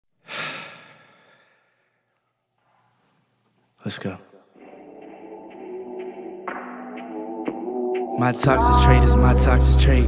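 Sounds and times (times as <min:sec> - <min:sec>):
person sighing: 0:00.2 - 0:01.7.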